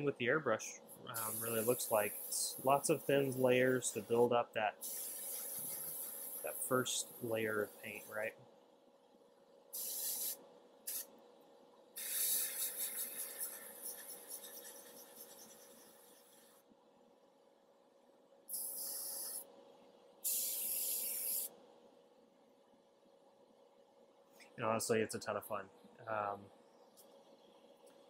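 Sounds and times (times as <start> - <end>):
airbrush spraying air hiss: 0.9 - 8.3, 9.7 - 11.1, 12.0 - 16.6, 18.5 - 19.5, 20.2 - 21.5.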